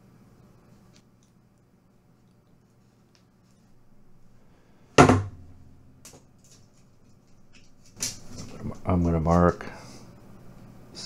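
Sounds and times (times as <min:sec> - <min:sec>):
sharp knock: 0:05.0 - 0:05.5.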